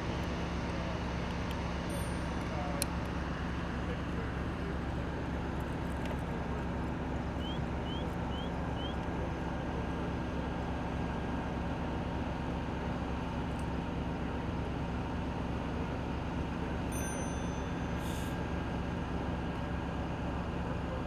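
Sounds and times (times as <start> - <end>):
low mechanical drone: 0.0 - 21.0.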